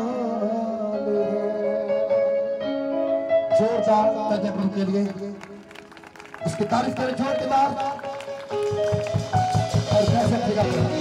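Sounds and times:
man singing through microphone: 0.0 - 5.6, 9.7 - 11.0
sustained instrumental accompaniment: 1.3 - 11.0
steady drum beat: 6.5 - 11.0.

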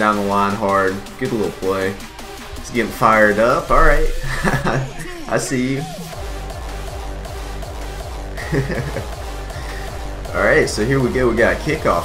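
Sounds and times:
background music with bass beat: 0.0 - 12.0.

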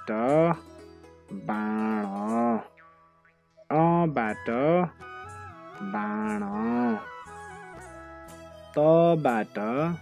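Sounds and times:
person calling out a long syllable: 0.0 - 0.6, 1.3 - 2.8, 5.8 - 7.2
faint background music: 0.0 - 10.0.

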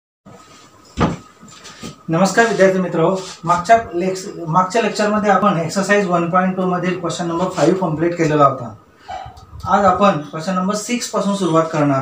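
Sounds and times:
faint room noise: 0.3 - 12.0.

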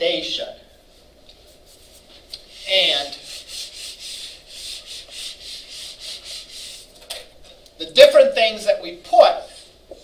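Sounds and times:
eraser wiping whiteboard: 1.5 - 7.0.

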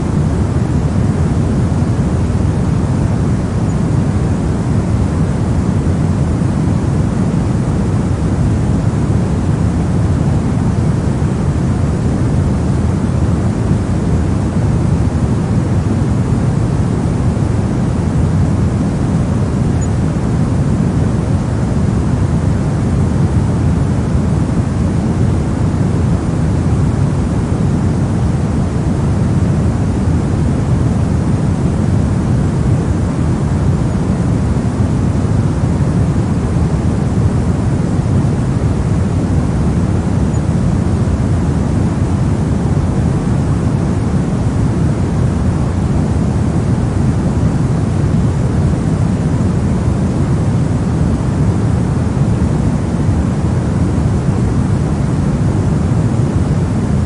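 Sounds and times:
pink noise hiss: 0.0 - 57.0.

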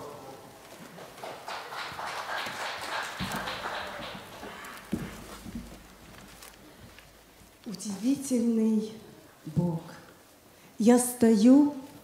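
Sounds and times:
hard-soled footsteps on stage floor: 0.4 - 7.7
rustling: 0.5 - 8.3
heavy thuds: 3.1 - 7.2.

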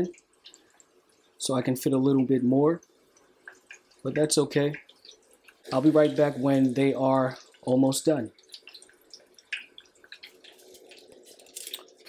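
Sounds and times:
oil crackling and popping: 0.0 - 12.0
shrimp deep-frying in oil: 0.0 - 12.0.

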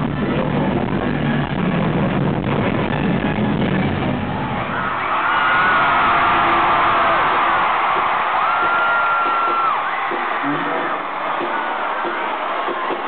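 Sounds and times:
arena crowd cheering and screaming: 0.0 - 13.0
band music: 3.0 - 13.0
high-pitched screams: 4.7 - 13.0.

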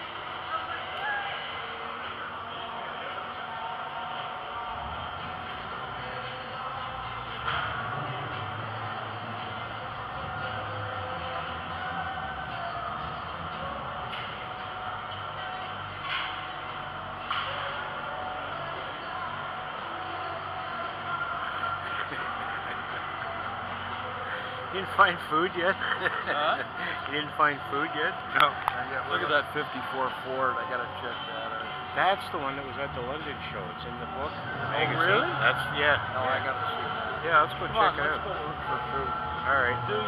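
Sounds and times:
distant crowd murmur: 0.0 - 40.0.

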